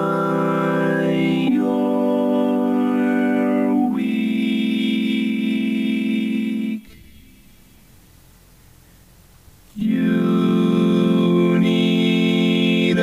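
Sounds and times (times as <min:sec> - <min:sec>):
vocoded singing voice: 0:00.0 - 0:07.3, 0:09.8 - 0:13.0.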